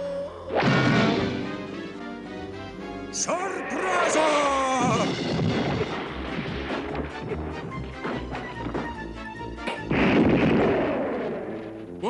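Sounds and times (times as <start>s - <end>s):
background music: 0.0s - 12.0s
loud crash: 0.6s - 1.7s, 4.6s - 7.4s, 9.9s - 11.8s
low thuds: 4.8s - 12.0s.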